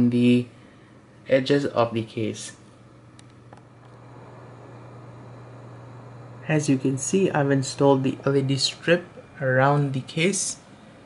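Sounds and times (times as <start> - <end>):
computer fans humming: 0.0 - 11.0.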